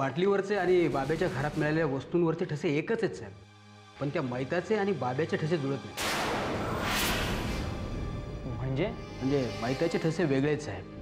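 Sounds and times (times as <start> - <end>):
dramatic rushing sound effect: 6.0 - 8.3.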